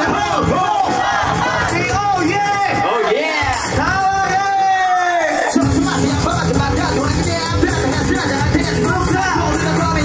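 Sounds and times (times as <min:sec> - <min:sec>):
crowd shouting along: 0:00.0 - 0:06.5
loud backing track: 0:00.0 - 0:10.0
person rapping into a microphone: 0:00.0 - 0:10.0.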